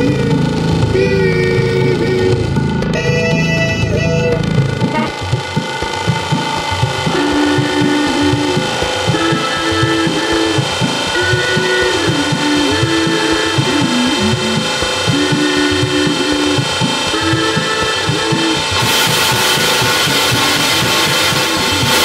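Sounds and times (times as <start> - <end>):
repeating low pulse: 0.0 - 22.0
wavering electronic melody: 0.0 - 22.0.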